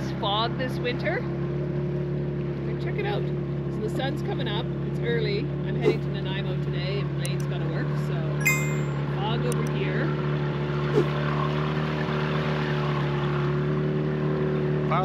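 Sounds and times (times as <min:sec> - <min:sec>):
short bright chime: 0:08.4 - 0:09.1.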